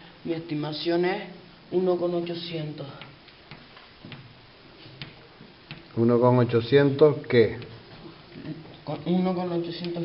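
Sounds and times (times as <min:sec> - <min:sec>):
chalk tapping on chalkboard: 0:02.8 - 0:06.0, 0:07.3 - 0:08.1.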